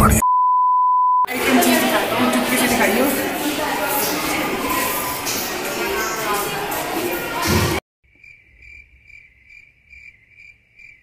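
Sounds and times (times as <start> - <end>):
loud hallway chatter: 1.3 - 7.8
cricket chirping: 8.1 - 11.0.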